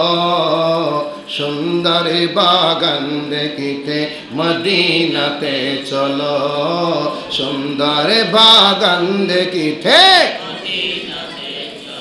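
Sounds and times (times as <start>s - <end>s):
man singing unaccompanied: 0.0s - 10.6s.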